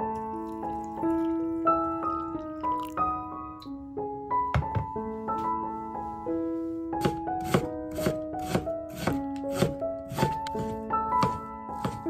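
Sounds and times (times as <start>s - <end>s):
gentle piano music: 0.0s - 12.0s.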